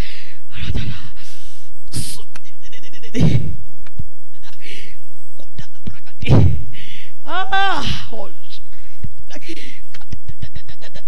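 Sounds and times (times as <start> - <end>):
woman groaning ah: 7.2 - 8.2.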